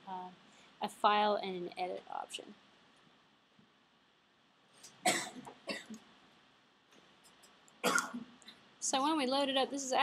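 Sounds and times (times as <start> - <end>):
person coughing: 5.0 - 6.0, 7.8 - 8.3.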